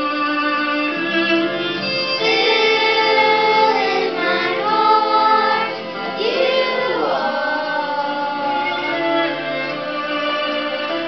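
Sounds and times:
recorded music accompaniment: 0.0 - 11.0
children singing: 1.8 - 10.7.

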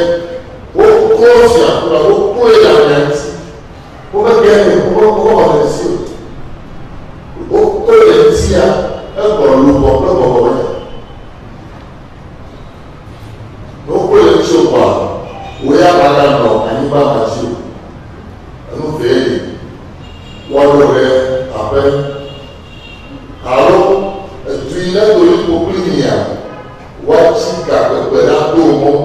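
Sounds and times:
man speaking animatedly: 0.0 - 6.3, 7.4 - 10.9, 13.8 - 17.8, 18.7 - 19.8, 20.5 - 22.4, 23.4 - 29.0.

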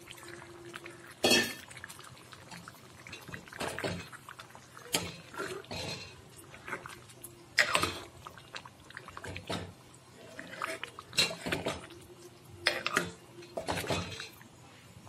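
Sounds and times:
gravy sloshing: 0.0 - 14.4
ladle stirring thick curry: 1.6 - 14.3
ladle knocking and scraping pot: 4.9 - 6.2, 12.6 - 14.4.

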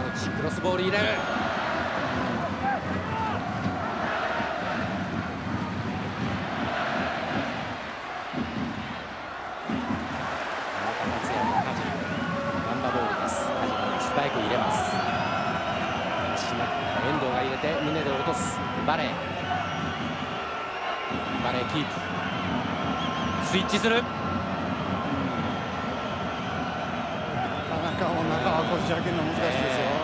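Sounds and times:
stadium crowd voices: 0.0 - 30.0
crowd chanting: 1.2 - 12.4.

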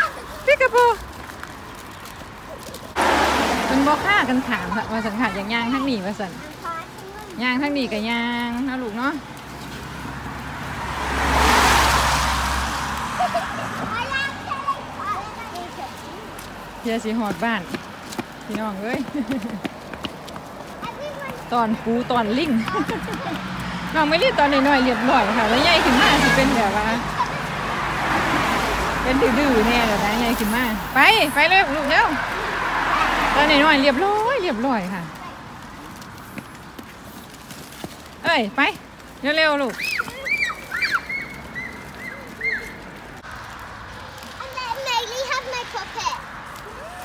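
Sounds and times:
footsteps on wet pavement: 0.0 - 47.0.

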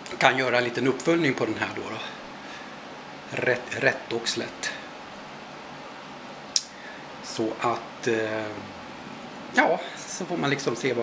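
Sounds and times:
steady low hiss: 0.0 - 11.0.

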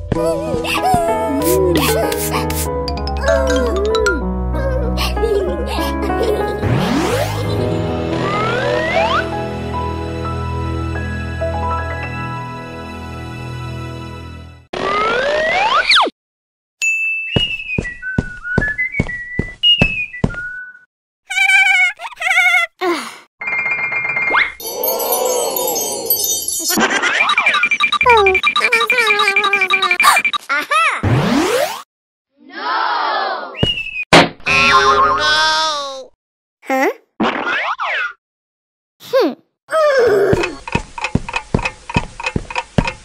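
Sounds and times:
whistled melody: 16.8 - 20.9, 33.6 - 34.1.

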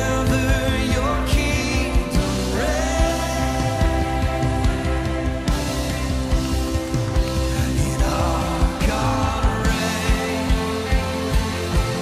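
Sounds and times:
worship band playing: 0.0 - 12.0.

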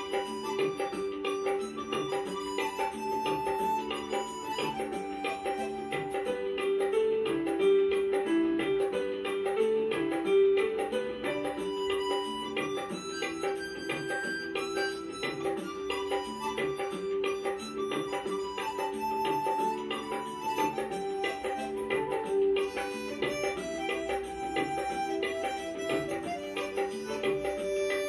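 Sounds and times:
harmonica melody: 0.0 - 6.5, 11.3 - 28.0
backing track with percussion beat: 0.0 - 28.0.

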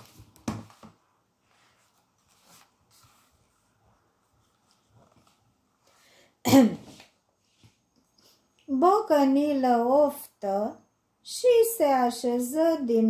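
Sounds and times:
woman coughing: 6.4 - 6.9.

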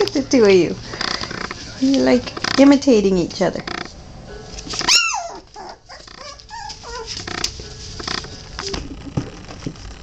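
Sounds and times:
puppies squealing and whimpering: 4.8 - 7.5.

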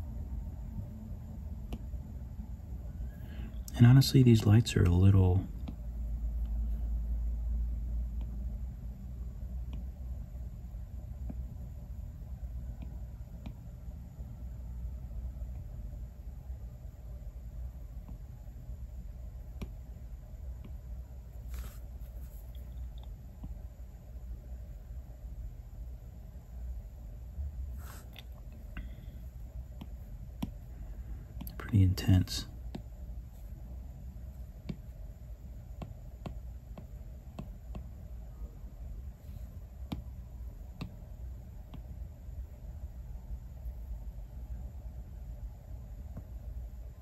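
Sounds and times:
low room rumble: 0.0 - 47.0
stylus tapping tablet screen: 1.6 - 2.0, 5.6 - 6.6, 9.6 - 9.9, 11.2 - 11.6, 12.7 - 13.7, 19.5 - 19.8, 20.6 - 20.8, 21.4 - 23.6, 27.8 - 30.7, 32.6 - 33.6, 34.2 - 38.1, 39.6 - 42.0.

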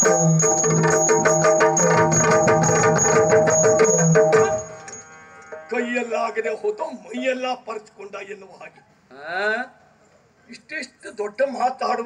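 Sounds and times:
rapid drum strokes: 0.0 - 5.0.

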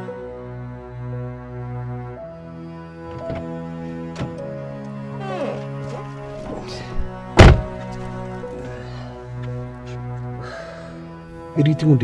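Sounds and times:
background music: 0.0 - 12.0
car door shutting: 3.1 - 8.4.

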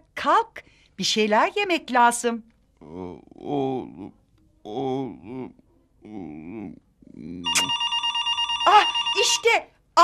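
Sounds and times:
man's voice: 2.8 - 7.7
telephone ringing: 7.5 - 9.6.

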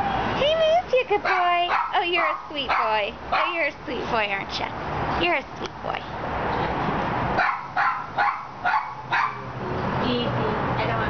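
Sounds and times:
dog barking: 1.2 - 3.6, 7.4 - 9.5.

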